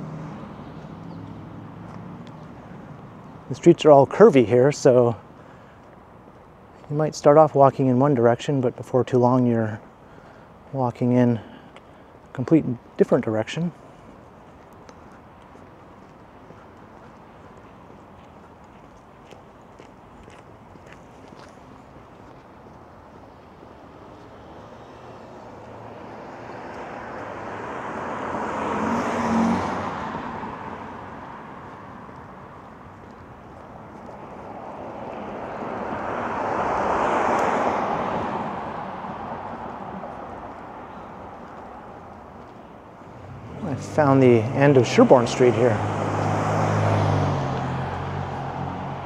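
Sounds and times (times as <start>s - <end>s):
car passing by: 0.0s - 3.2s, 23.8s - 33.2s, 33.9s - 49.0s.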